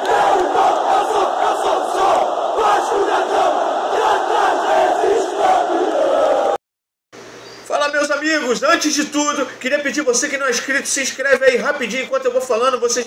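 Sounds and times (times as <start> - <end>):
crowd chanting: 0.0 - 6.6.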